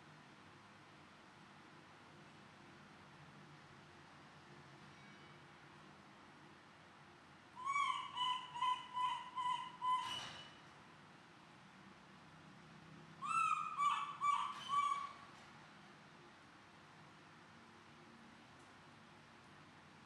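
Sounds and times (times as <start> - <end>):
animal calling in pitched notes: 7.6 - 10.1, 13.2 - 15.2.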